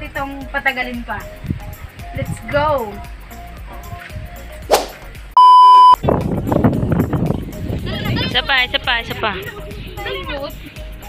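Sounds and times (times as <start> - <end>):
faint background music: 0.0 - 5.4, 6.2 - 11.0
quick swish: 4.6 - 5.1
electronic beep: 5.4 - 6.0.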